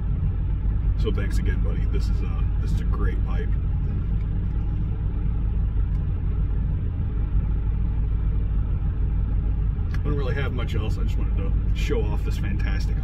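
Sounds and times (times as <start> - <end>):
vehicle engine idling: 0.0 - 13.0.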